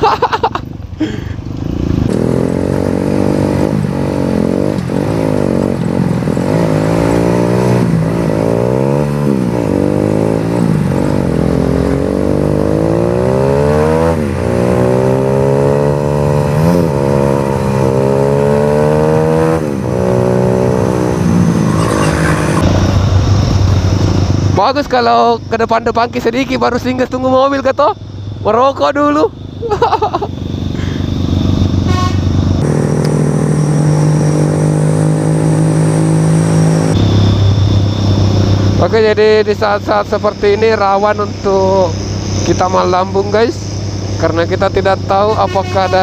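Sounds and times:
road and wind noise: 0:00.0 - 0:46.0
motorcycle engine revving: 0:01.4 - 0:46.0.

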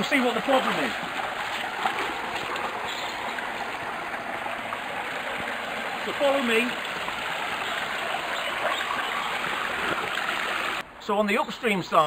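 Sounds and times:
water rushing from pipes: 0:00.0 - 0:10.8.

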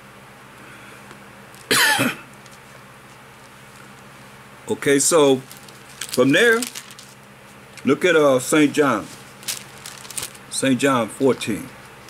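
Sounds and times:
man coughing: 0:01.7 - 0:02.3.

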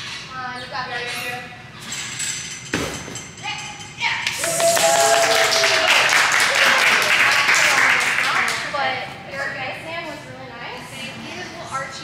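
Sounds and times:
onlookers cheering and clapping: 0:04.3 - 0:08.3.

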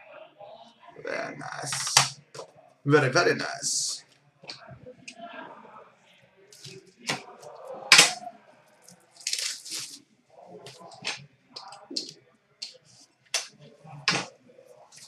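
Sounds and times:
card pack tearing and crinkling: 0:09.2 - 0:10.0.

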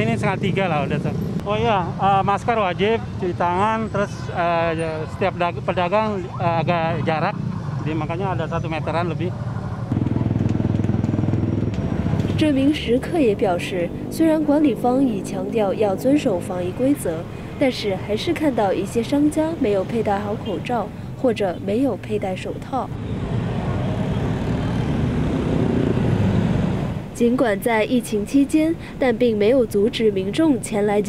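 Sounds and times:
motorbike traffic rumble: 0:00.0 - 0:31.0
motorcycle engine running: 0:09.4 - 0:16.6.

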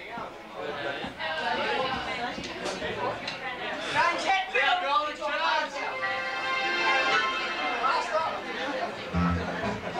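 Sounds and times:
crowd chatter: 0:00.0 - 0:09.9.

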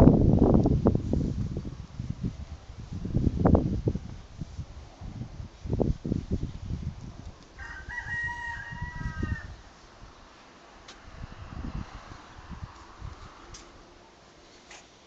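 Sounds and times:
wind buffeting microphone: 0:00.0 - 0:14.0
rooster crowing: 0:07.6 - 0:09.7.

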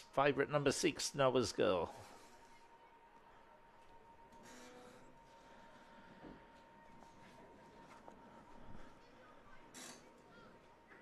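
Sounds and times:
thin steady hum: 0:00.0 - 0:11.0.

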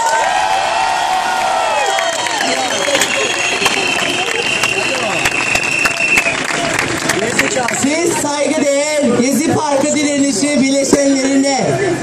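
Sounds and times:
crowd cheering: 0:00.0 - 0:09.2
long high whistle: 0:01.8 - 0:06.4.

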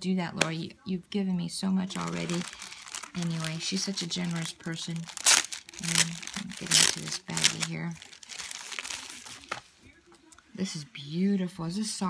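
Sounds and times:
plastic bag crinkling: 0:01.9 - 0:09.7.

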